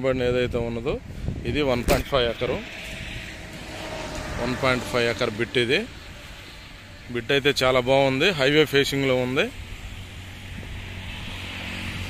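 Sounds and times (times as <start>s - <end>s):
man's voice: 0.0s - 2.6s
vehicle passing hiss: 2.2s - 12.0s.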